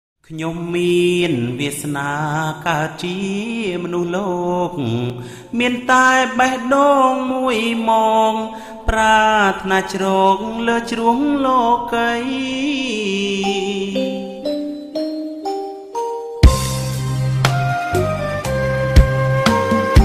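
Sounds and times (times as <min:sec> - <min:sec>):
man singing slow song: 0:00.2 - 0:14.6.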